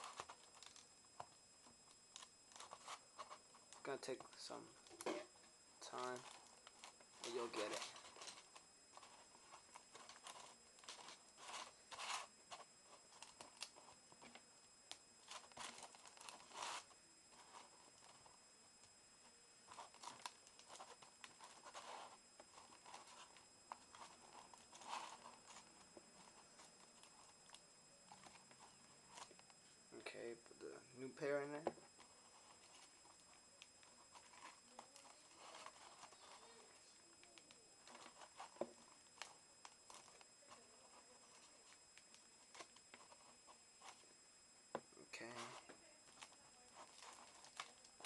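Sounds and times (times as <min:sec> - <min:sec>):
aluminium foil crinkling: 0:00.0 - 0:00.9, 0:05.8 - 0:18.3, 0:19.7 - 0:29.6, 0:32.0 - 0:44.0, 0:45.2 - 0:48.0.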